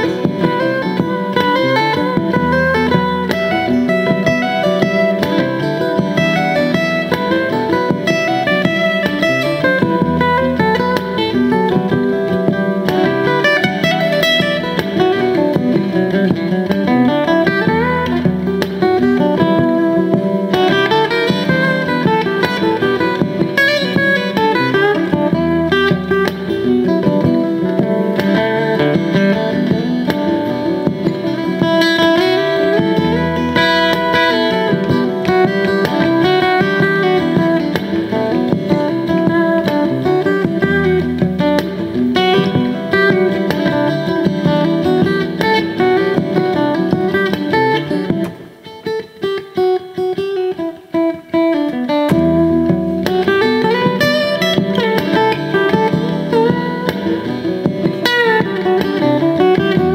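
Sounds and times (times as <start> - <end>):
acoustic guitar fingerpicking: 0.0 - 59.9
looped guitar layers: 0.0 - 59.9.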